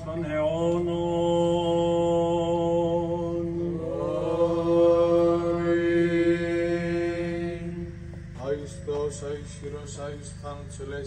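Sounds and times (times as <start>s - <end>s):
male voice chanting melody: 0.0s - 11.0s.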